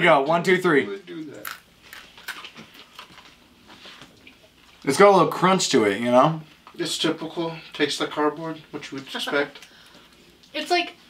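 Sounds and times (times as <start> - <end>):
wafers being bitten and chewed: 1.4 - 3.4.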